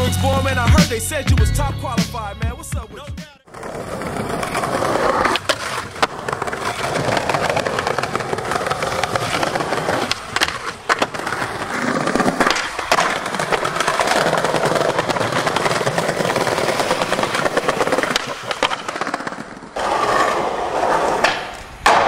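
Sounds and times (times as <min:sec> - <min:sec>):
skateboard tail clacks: 0:03.5 - 0:22.0
skateboard wheels rolling on paving: 0:03.5 - 0:22.0.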